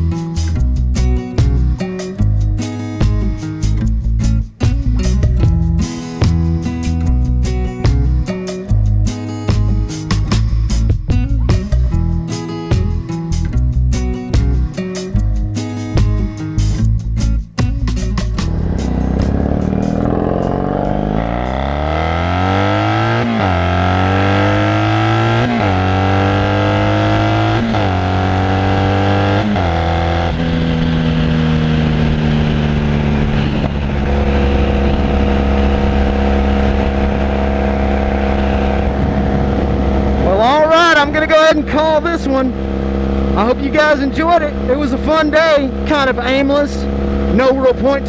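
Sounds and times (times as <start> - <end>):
motorcycle engine accelerating: 0.0 - 48.0.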